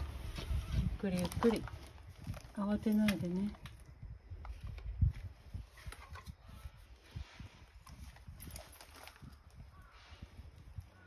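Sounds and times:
footsteps on concrete: 0.0s - 1.0s.

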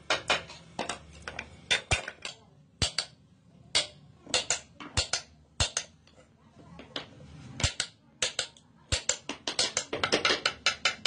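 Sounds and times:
hammer tapping metal chisel: 7.6s - 11.0s.

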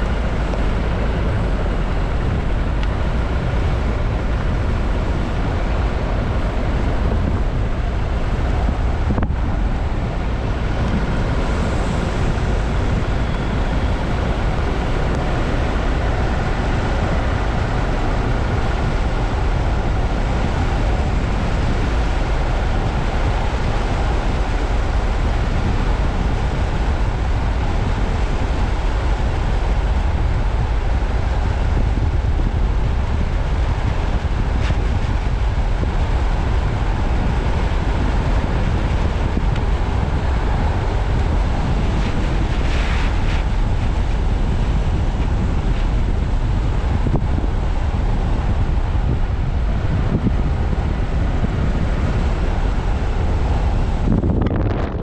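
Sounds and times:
vehicle engine and tyre rumble: 0.0s - 55.0s
wind: 0.0s - 55.0s.

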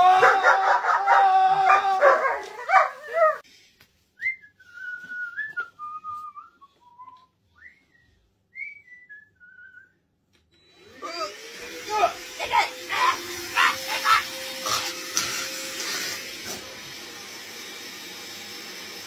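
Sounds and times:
man crying out strained: 0.0s - 2.5s, 11.1s - 14.9s
vacuum cleaner humming: 0.0s - 3.4s, 10.6s - 19.0s
person whistling a tune: 4.2s - 10.0s.

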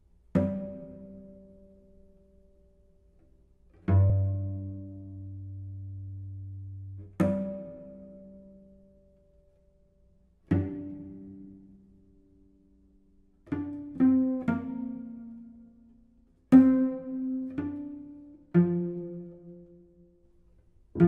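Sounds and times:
cello plucked pizzicato: 0.0s - 21.0s.

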